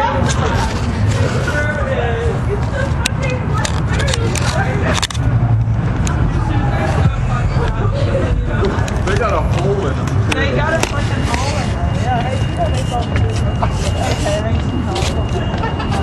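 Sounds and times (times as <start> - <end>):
indistinct voices talking: 0.0 - 16.0
steady low rumble: 0.1 - 16.0.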